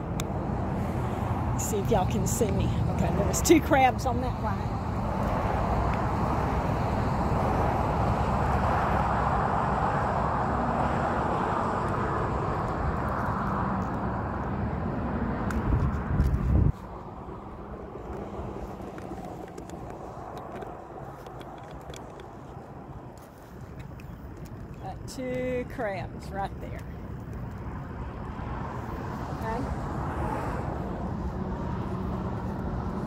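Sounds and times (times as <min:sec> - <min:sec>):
road traffic noise: 0:00.0 - 0:33.0.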